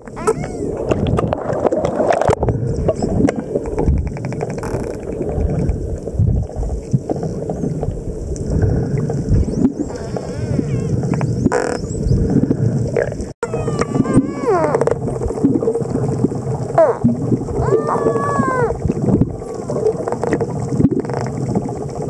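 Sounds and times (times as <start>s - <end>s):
constant hum: 0.0s - 22.0s
low rumble of water: 0.0s - 22.0s.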